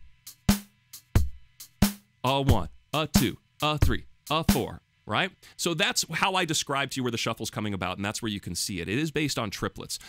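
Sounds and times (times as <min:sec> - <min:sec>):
drum machine beat: 0:00.0 - 0:04.7.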